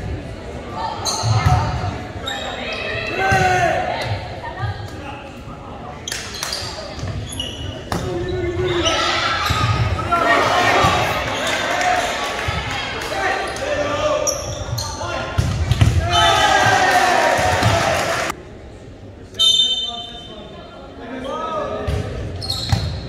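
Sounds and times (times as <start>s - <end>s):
sneakers squeaking on hardwood: 6.1s - 10.0s, 22.4s - 23.0s
players and spectators cheering: 9.0s - 14.1s, 15.9s - 18.4s.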